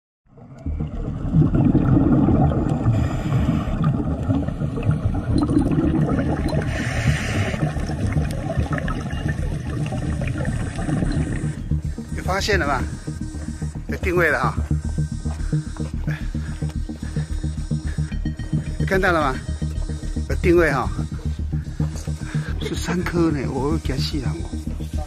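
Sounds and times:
underwater rumble of moving water: 0:00.3 - 0:13.0.

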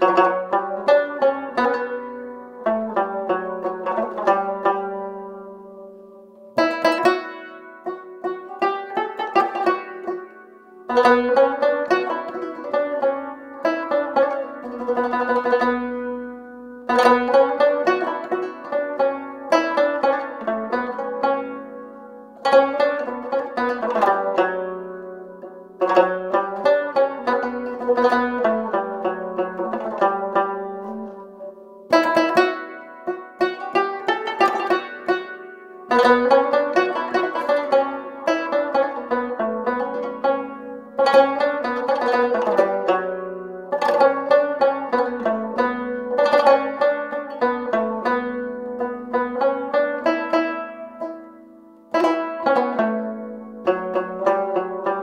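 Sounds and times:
plucked lute melody: 0:00.0 - 0:55.0.

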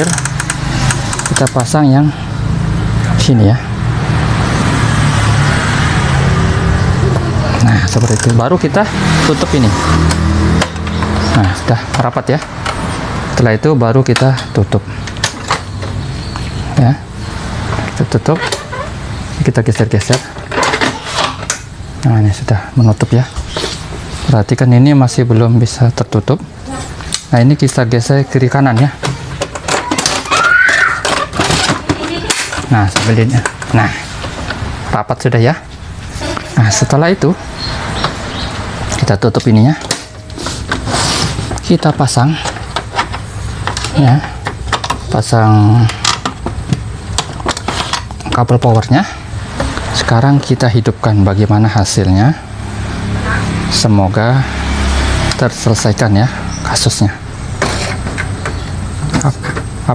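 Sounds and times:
road traffic hum: 0:00.0 - 0:59.9
plastic scraping and rattling: 0:29.0 - 0:34.6, 0:45.8 - 0:48.4, 0:57.6 - 0:59.7.

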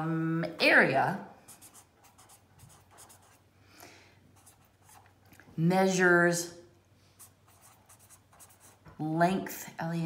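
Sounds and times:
felt-tip pen writing on paper: 0:01.5 - 0:03.4, 0:07.2 - 0:08.8.

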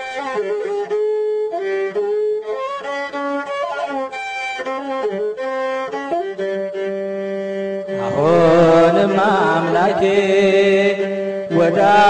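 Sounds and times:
chant-like ornamented melody: 0:00.0 - 0:12.0.

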